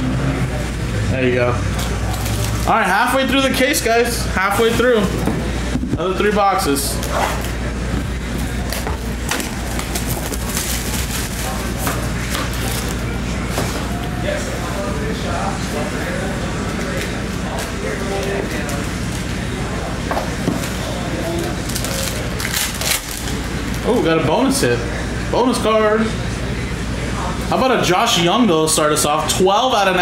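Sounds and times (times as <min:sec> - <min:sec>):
steady low hum: 0:00.0 - 0:30.0
plastic wrap crinkling and tearing: 0:01.8 - 0:02.8, 0:08.5 - 0:14.0, 0:20.6 - 0:23.9.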